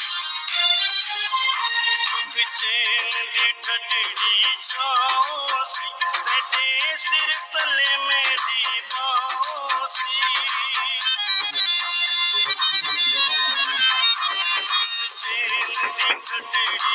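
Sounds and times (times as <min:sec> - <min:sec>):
man singing: 0:02.2 - 0:11.2, 0:15.1 - 0:16.9
instrumental held notes: 0:09.2 - 0:16.9.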